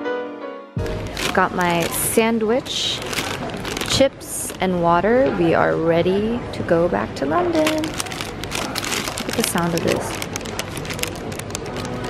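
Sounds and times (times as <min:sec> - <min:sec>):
paper bag crinkling: 0:00.8 - 0:04.7, 0:07.5 - 0:12.0.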